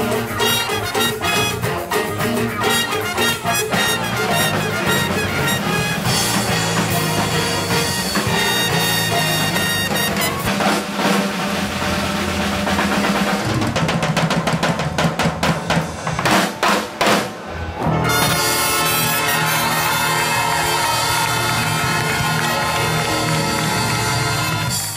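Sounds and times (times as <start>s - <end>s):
band music: 0.0s - 24.9s.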